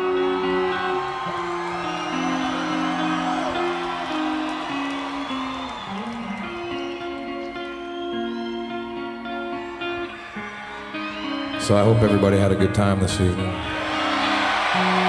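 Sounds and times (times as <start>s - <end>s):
crowd cheering and whistling: 0.0s - 15.0s
slow live guitar: 0.0s - 15.0s.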